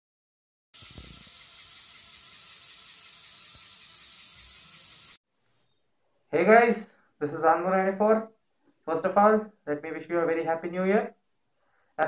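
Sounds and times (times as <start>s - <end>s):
steady high hiss: 0.8s - 5.2s.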